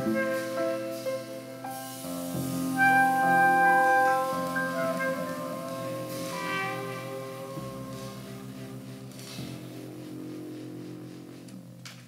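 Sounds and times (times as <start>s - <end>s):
saxophone long note: 0.0s - 11.6s
double bass: 0.0s - 12.0s
piano: 0.0s - 12.0s.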